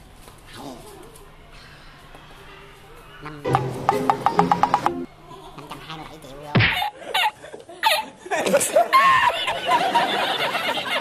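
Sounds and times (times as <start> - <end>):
old man laughing hard: 6.7 - 11.0.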